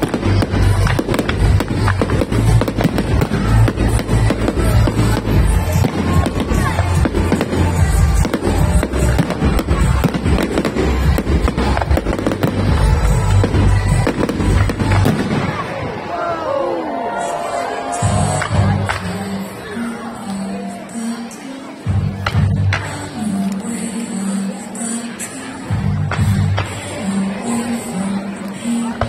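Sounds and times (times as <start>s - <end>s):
aerial fireworks bangs and crackling: 0.0s - 16.0s.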